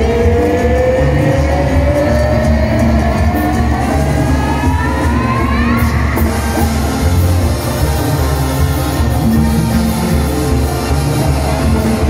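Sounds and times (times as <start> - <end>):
brass band music: 0.0 - 12.0.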